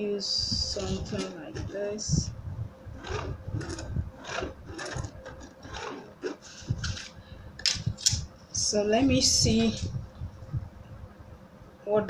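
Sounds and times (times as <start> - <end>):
pen scratching on fabric: 0.7 - 2.0, 3.0 - 7.2.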